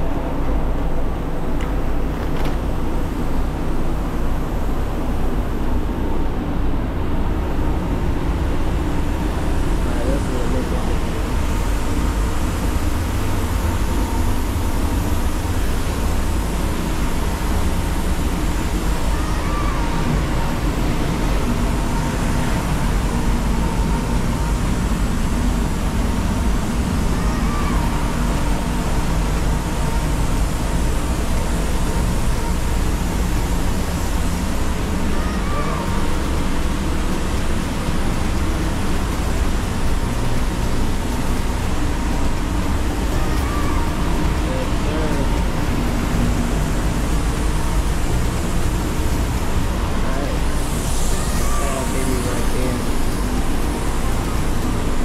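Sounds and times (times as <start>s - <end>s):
ventilation fans rushing air: 0.0s - 55.0s.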